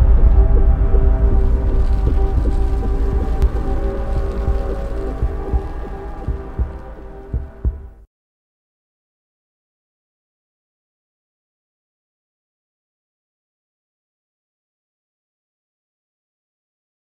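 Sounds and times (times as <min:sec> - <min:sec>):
deep impact rumble: 0:00.0 - 0:08.0
droning tones: 0:00.0 - 0:08.0
low thumps: 0:00.0 - 0:08.0.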